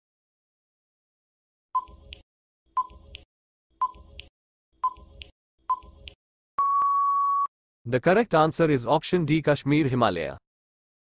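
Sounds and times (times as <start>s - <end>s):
timer tick: 3.8s - 6.2s.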